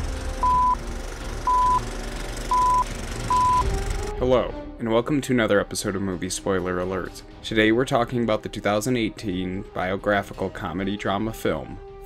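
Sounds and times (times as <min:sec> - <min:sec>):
short high electronic beeps: 0:00.4 - 0:00.8, 0:01.5 - 0:01.9, 0:02.5 - 0:03.7.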